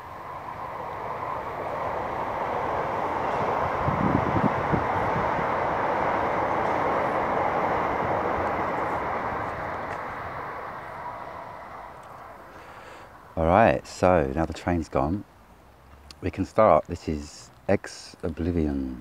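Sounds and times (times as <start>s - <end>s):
distant passing train: 0.0s - 19.0s.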